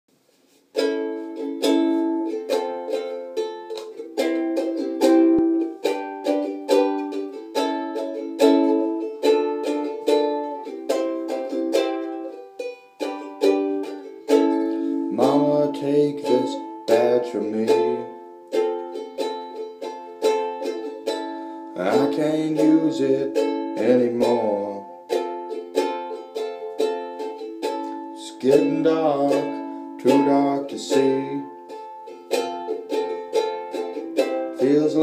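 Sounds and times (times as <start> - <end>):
ukulele strumming chords: 0.5 - 35.0
person singing: 0.8 - 35.0.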